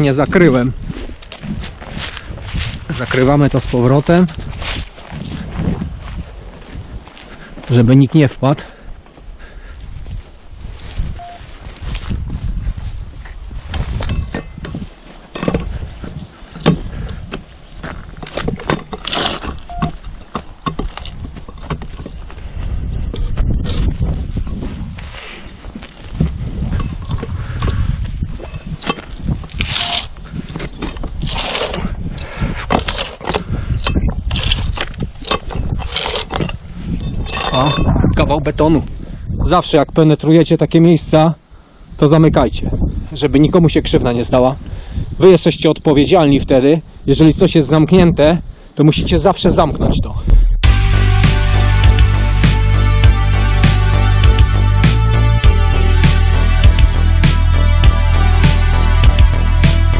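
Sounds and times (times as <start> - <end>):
low rumbling handling noise: 50.3 - 59.9.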